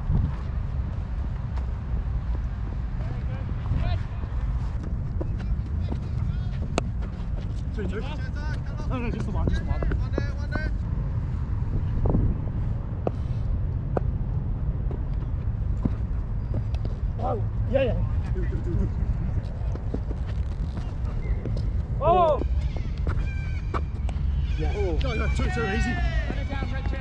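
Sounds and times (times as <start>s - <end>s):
wind rumble on microphone: 0.0s - 27.0s
distant shouts: 20.9s - 27.0s.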